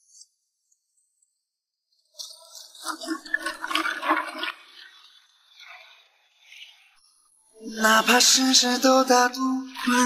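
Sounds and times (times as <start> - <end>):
water sloshing in a wooden tub: 2.2 - 5.8.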